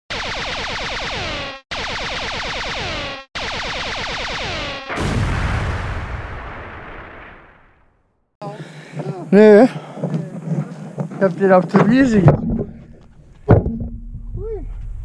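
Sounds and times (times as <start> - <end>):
bursts of falling tones: 0.1 - 7.9
loud boom: 4.9 - 8.0.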